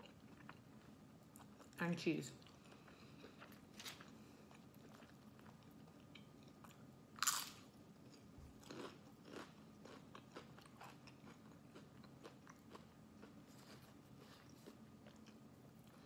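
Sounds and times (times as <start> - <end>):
chip crunching while chewed: 2.5 - 16.0.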